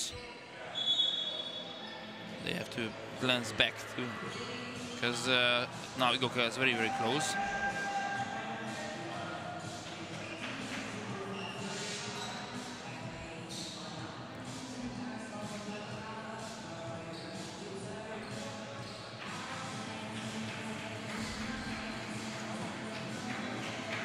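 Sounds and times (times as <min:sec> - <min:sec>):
faint music: 0:00.0 - 0:24.0.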